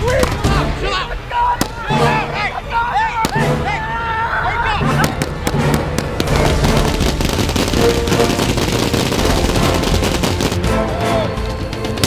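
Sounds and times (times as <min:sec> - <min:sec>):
fireworks crackling and popping: 0:05.0 - 0:10.8.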